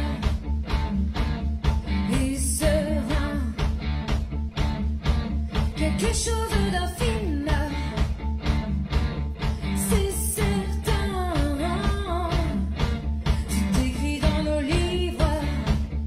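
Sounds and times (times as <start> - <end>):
person singing: 0.0 - 0.4, 2.0 - 3.7, 5.8 - 8.1, 9.6 - 16.0
bass guitar: 0.0 - 16.0
drum kit beat: 0.0 - 16.0
electric guitar: 0.0 - 16.0.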